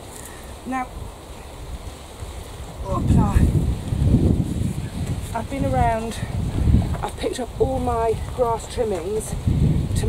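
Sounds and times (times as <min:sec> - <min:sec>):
wind buffeting microphone: 0:00.0 - 0:10.0
person speaking: 0:00.6 - 0:00.9, 0:02.8 - 0:03.6, 0:05.3 - 0:06.4.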